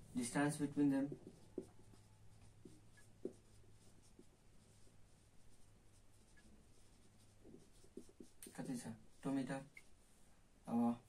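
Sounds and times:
marker writing on a whiteboard: 0.0 - 10.2.

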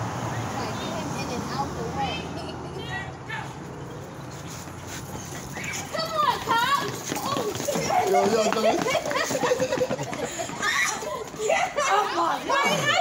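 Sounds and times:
high voices calling out: 5.0 - 13.0.

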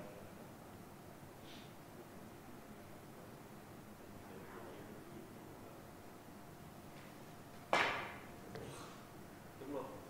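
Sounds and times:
cue striking billiard ball: 7.7 - 8.3.

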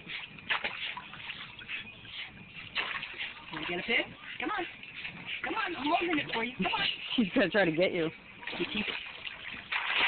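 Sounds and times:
water splashing in pool: 0.0 - 7.1, 8.3 - 10.0.

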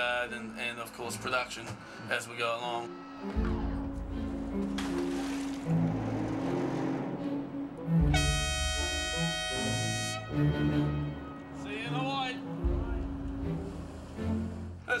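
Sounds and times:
background music: 0.0 - 15.0
ship's horn blast: 5.6 - 14.7.

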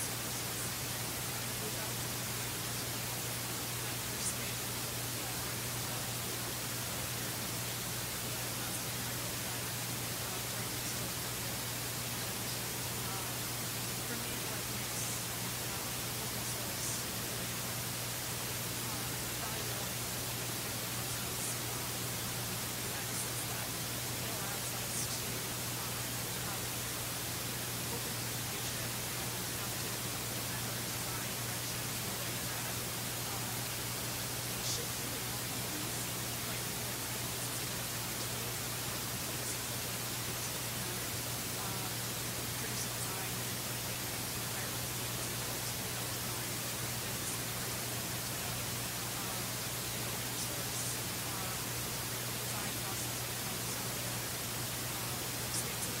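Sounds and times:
background hiss: 0.0 - 56.0
low electrical hum: 0.0 - 56.0.

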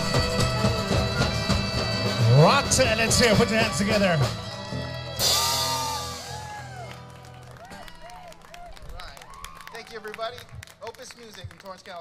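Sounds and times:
audience clapping and cheering: 4.5 - 12.0.

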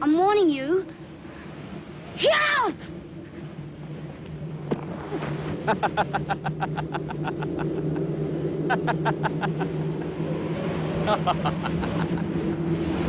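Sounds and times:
low droning hum: 0.0 - 13.0
man laughing: 5.6 - 10.1, 11.0 - 12.5.

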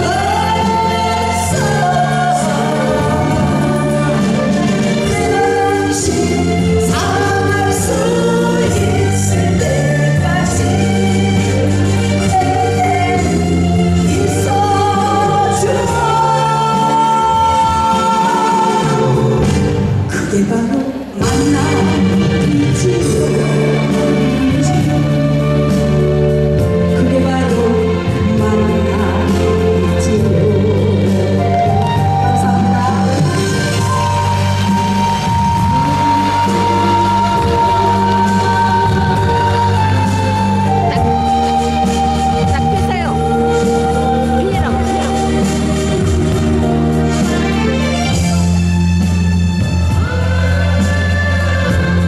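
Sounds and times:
woman singing into a microphone: 0.0 - 46.8, 49.9 - 52.0
instrumental accompaniment: 0.0 - 52.0
steady bass line: 0.0 - 52.0.

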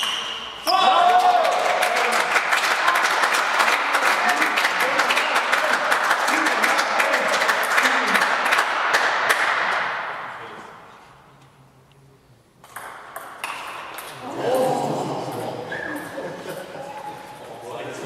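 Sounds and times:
spectators clapping: 1.0 - 9.8.

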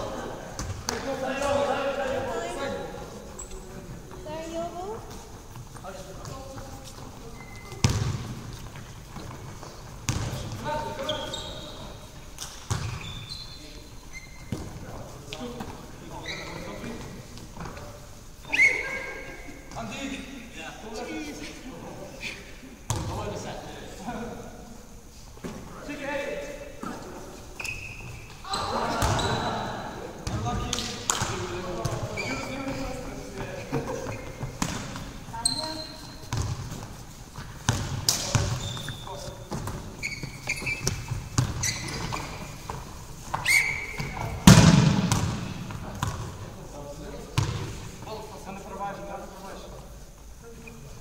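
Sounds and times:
short high squeaks: 7.2 - 7.8, 11.0 - 12.0, 12.8 - 14.6, 16.1 - 16.8, 18.4 - 19.2, 27.4 - 29.4, 32.1 - 32.6, 35.4 - 36.3, 38.5 - 42.7, 43.4 - 44.2.

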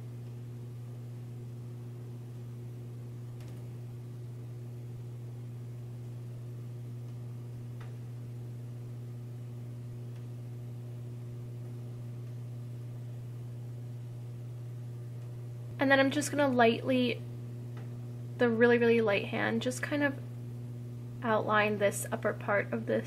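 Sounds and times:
low electrical hum: 0.0 - 23.0.

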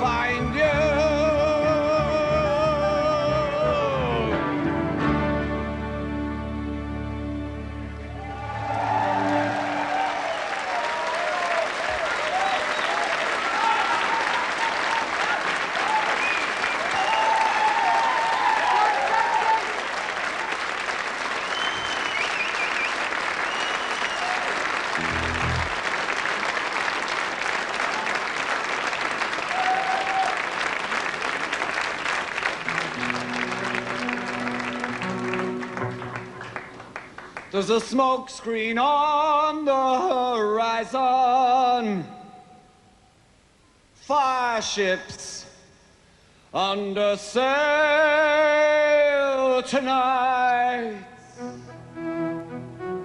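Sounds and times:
cheers and whistles: 8.0 - 15.1, 15.8 - 19.8, 21.4 - 24.6, 29.5 - 30.5
audience applauding: 8.0 - 37.9
band holding a chord: 25.0 - 25.9.

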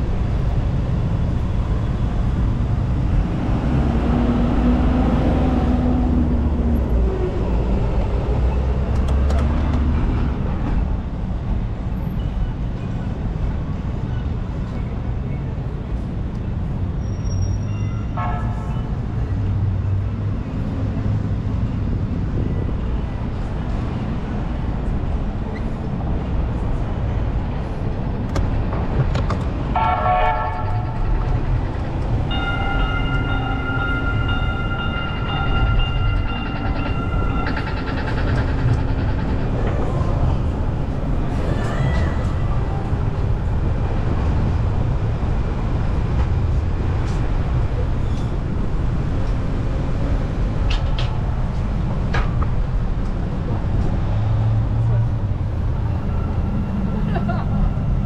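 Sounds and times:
train rumbling past: 0.0 - 17.2, 18.0 - 58.0
street traffic: 0.0 - 58.0
train horn: 18.1 - 18.8, 29.8 - 31.0.

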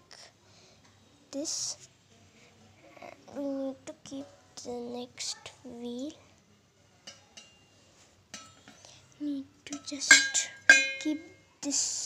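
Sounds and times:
metal utensils clinking: 8.3 - 8.9, 9.7 - 11.4.

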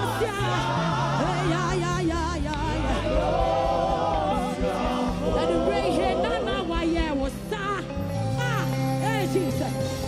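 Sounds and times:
group singing in harmony: 0.0 - 7.3
band with bass and drums: 0.0 - 10.0.

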